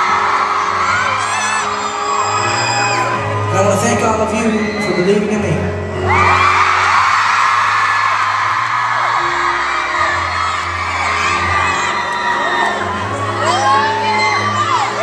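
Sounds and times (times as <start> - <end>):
crowd screaming and cheering: 0.0 - 15.0.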